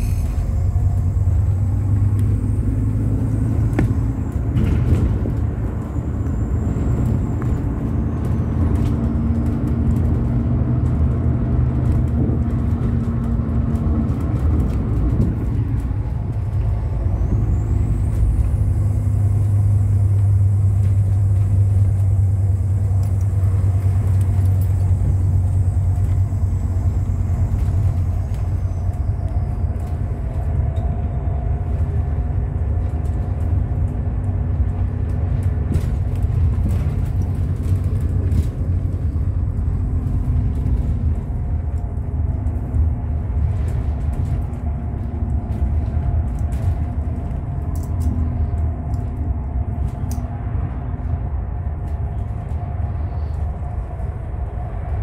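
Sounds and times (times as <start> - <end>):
bus engine running: 0.0 - 55.0
road noise: 0.0 - 55.0.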